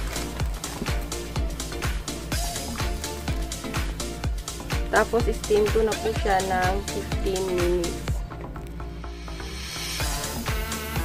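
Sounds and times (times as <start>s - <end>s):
upbeat dance music: 0.0s - 11.0s.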